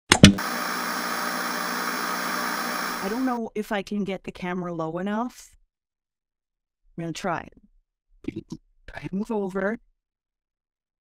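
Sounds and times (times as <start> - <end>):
static hiss: 0.4 - 3.4.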